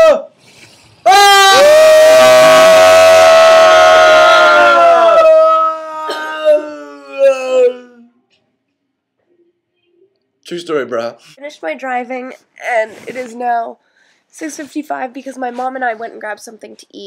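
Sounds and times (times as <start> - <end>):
boys howling together: 1.1 - 8.1.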